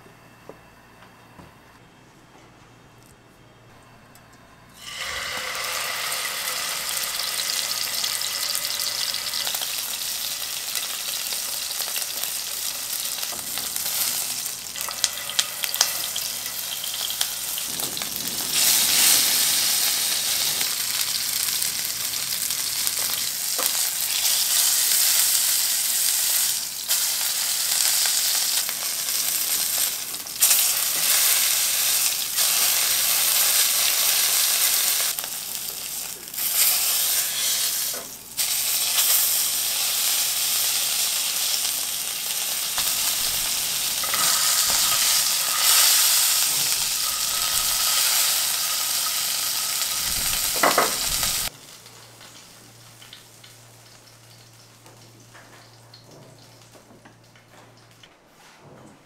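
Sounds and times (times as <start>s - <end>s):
steak sizzling in a frying pan: 4.8s - 54.4s.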